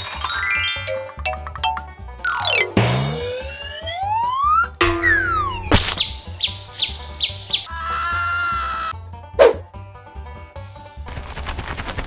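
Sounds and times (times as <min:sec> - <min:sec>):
background music: 0:00.0 - 0:07.8
held tone: 0:04.8 - 0:06.4.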